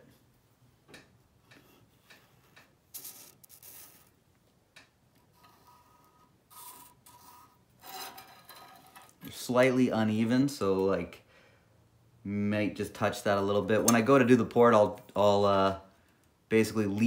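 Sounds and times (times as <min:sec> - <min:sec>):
marker scratching along ruler: 0:02.0 - 0:04.2, 0:05.3 - 0:09.0
thin squeak: 0:05.4 - 0:09.1.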